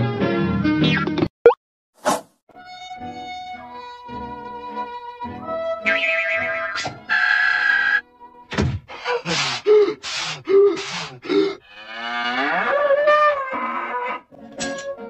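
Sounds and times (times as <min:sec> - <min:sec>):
cartoon music: 0:05.4 - 0:07.3
cow moo: 0:11.6 - 0:14.3.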